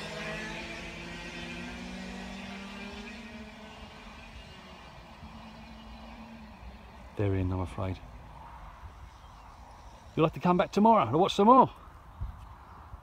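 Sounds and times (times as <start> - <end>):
kart engine at high revs: 0.0 - 7.2.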